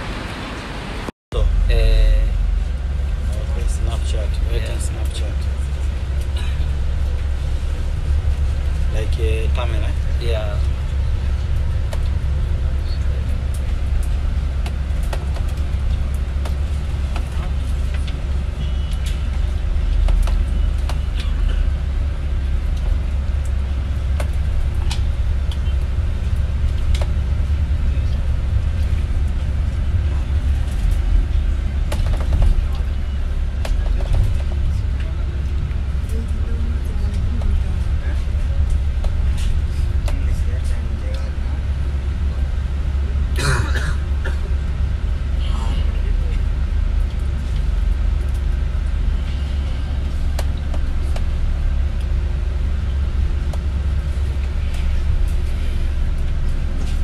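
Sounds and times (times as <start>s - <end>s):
vehicle rumble: 0.0s - 57.0s.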